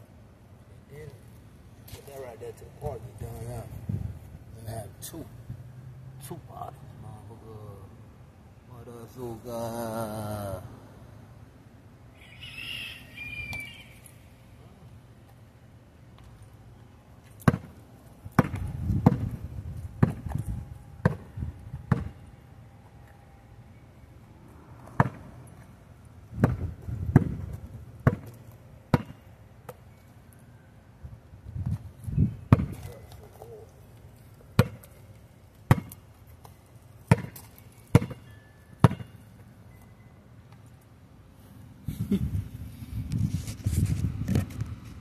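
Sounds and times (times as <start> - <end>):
basketball bouncing on pavement: 17.2 - 22.2, 24.8 - 25.4, 26.3 - 29.8, 31.6 - 33.4, 34.4 - 39.5.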